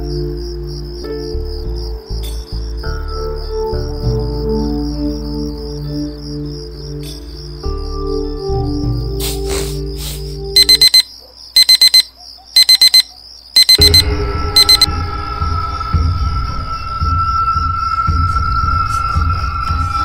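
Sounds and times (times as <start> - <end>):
background music: 0.0 - 10.6
cricket-like chirring: 0.0 - 14.9
mobile phone alert beeping: 10.6 - 14.0, 14.6 - 14.9.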